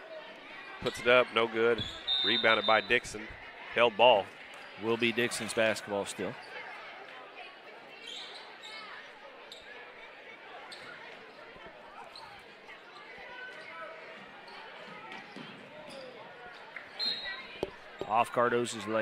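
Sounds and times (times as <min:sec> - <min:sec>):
faint crowd chatter: 0:00.0 - 0:19.0.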